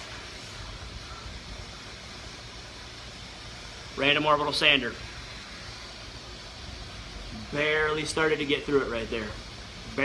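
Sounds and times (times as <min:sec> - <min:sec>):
workshop rumble and hiss: 0:00.0 - 0:10.0.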